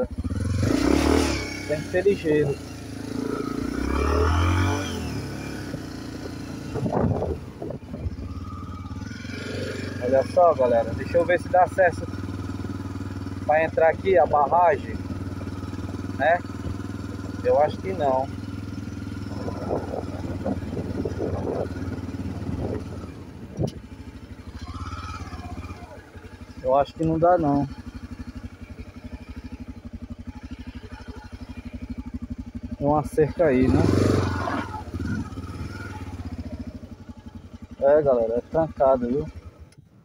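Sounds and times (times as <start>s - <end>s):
motorcycle engine running: 0.0s - 40.0s.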